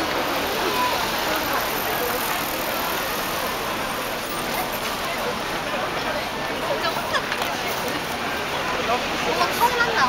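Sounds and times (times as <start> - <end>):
cars passing: 0.0 - 10.0
people's voices: 0.0 - 10.0.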